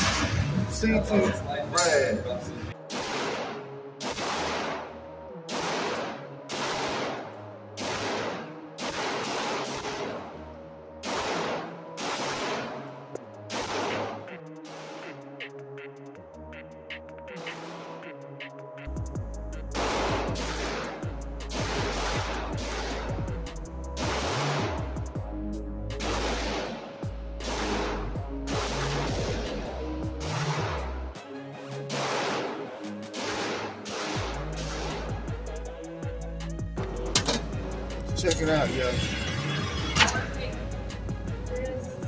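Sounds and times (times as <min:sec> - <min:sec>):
electronic music: 0:00.0 - 0:08.6, 0:09.7 - 0:42.0
pistol shots echoing indoors: 0:02.8 - 0:15.3, 0:19.7 - 0:23.3, 0:24.0 - 0:24.9, 0:26.0 - 0:29.6, 0:31.9 - 0:35.0.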